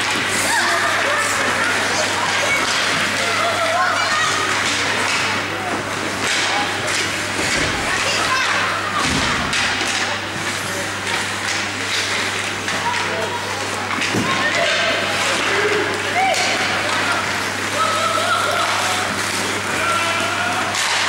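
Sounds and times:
knocks of puck sticks and boards: 1.7 - 3.5, 4.3 - 13.1, 13.9 - 21.0.

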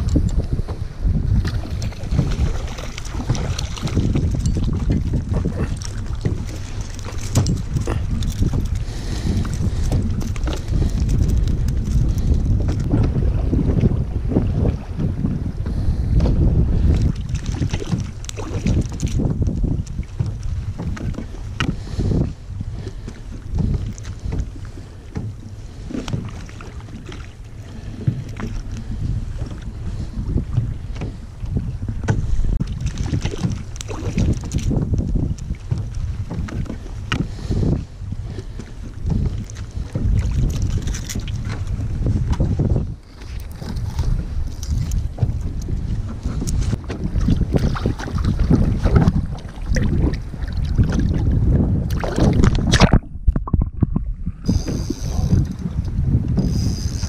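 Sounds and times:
water slapping plastic hull: 0.0 - 15.2, 16.2 - 22.0, 30.5 - 56.0
wind rumbling on microphone: 0.0 - 57.0.

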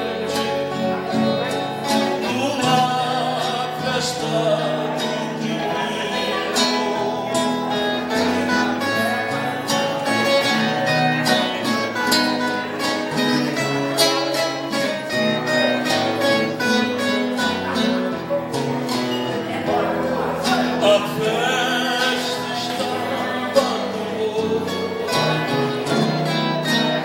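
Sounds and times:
acoustic guitars strummed: 0.0 - 27.0.

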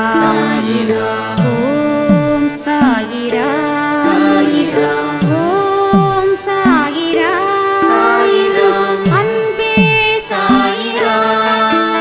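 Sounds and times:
person singing ornamented melody: 0.0 - 12.0.

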